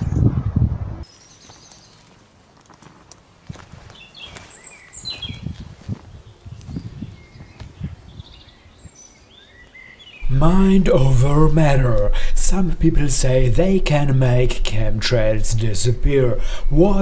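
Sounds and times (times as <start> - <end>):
small birds chirping: 1.0 - 10.3
low outdoor rumble: 10.2 - 17.0.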